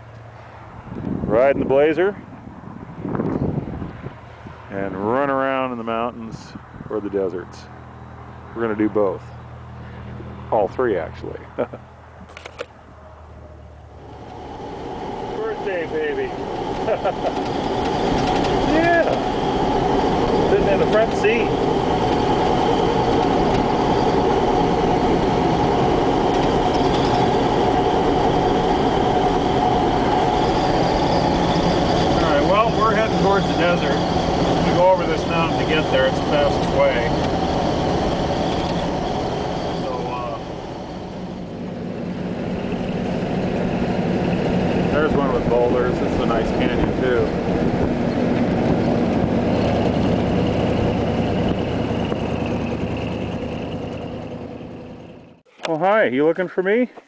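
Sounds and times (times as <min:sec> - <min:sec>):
vehicle engine and road drone: 0:00.0 - 0:56.3
short wavering high sounds: 0:13.9 - 0:44.9.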